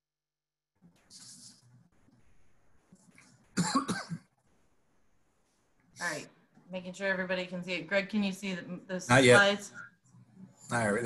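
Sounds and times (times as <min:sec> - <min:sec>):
person coughing: 0:03.6 - 0:04.3.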